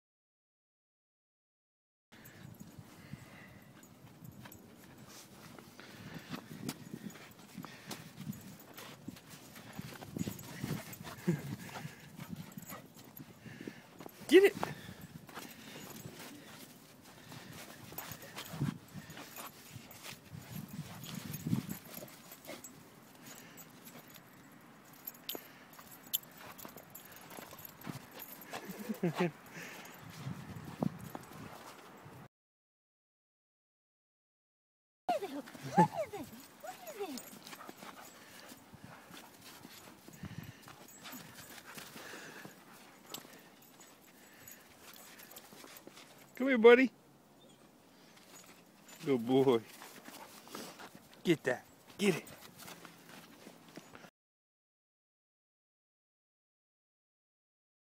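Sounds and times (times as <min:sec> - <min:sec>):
dog paws crunching in snow: 0:02.2 - 0:32.2, 0:35.1 - 0:46.4, 0:47.6 - 0:54.1.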